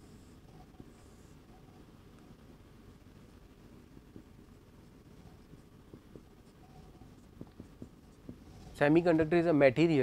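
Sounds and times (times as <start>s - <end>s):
marker writing on whiteboard: 4.0s - 9.3s.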